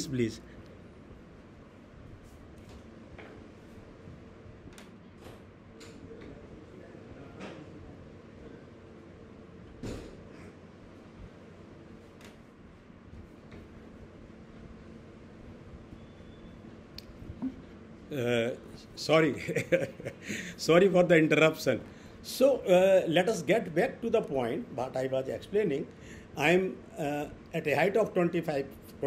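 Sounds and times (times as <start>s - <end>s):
faint steady hum: 0.0s - 29.0s
thump: 9.8s - 10.2s.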